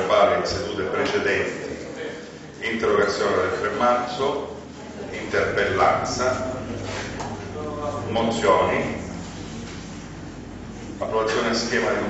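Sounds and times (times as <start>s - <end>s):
man talking: 0.0s - 9.2s, 11.0s - 12.0s.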